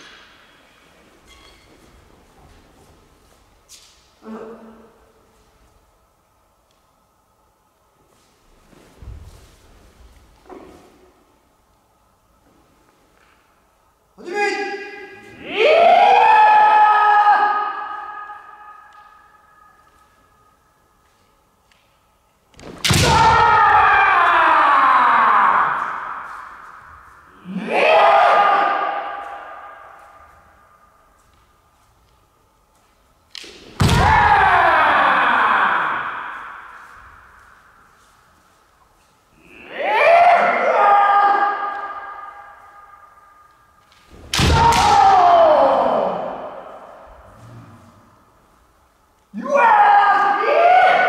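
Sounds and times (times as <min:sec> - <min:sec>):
long drawn-out shouts: 0:14.2 - 0:20.0, 0:23.0 - 0:30.8, 0:33.9 - 0:38.1, 0:39.4 - 0:43.6, 0:44.3 - 0:48.0, 0:49.3 - 0:51.0
sharp crack: 0:22.5 - 0:23.6, 0:43.4 - 0:45.2.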